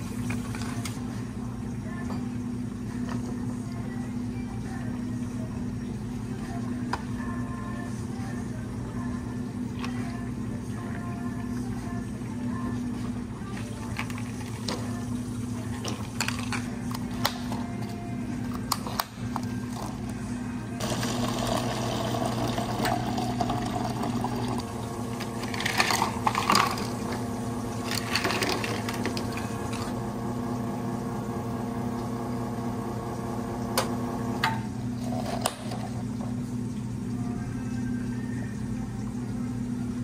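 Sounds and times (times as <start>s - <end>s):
espresso machine pump running: 0.0s - 7.4s, 18.2s - 37.2s
low machine hum: 0.0s - 40.0s
ice clattering in plastic cups: 15.8s - 16.7s, 20.8s - 27.2s, 27.8s - 29.9s.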